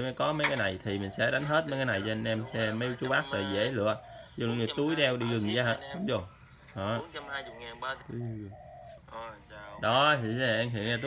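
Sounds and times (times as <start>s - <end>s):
dove cooing: 0.0s - 11.0s
man murmuring: 3.1s - 8.6s.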